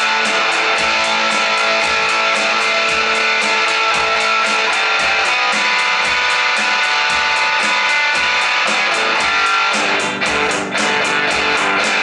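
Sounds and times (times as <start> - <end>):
drum machine ticks: 0.0 - 12.0
electric guitar sustained notes: 0.0 - 12.0
low kick drum: 0.6 - 12.0.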